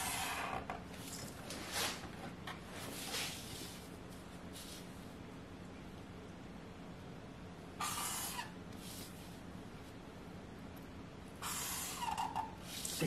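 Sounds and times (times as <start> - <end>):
marker scratching along a ruler: 0.0 - 0.7, 7.8 - 9.2, 11.4 - 13.0
faint steady hum: 0.0 - 13.0.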